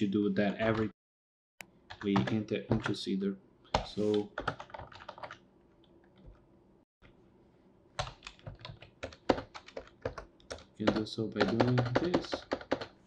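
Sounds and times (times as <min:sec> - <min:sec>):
typing on computer keyboard: 0:04.4 - 0:05.4, 0:08.0 - 0:13.0.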